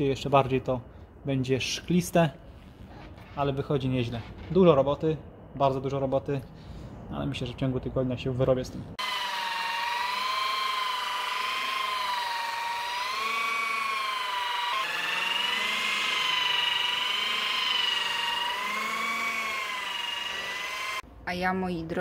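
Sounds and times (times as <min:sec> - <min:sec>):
car polisher motor whine: 0:09.0 - 0:21.0.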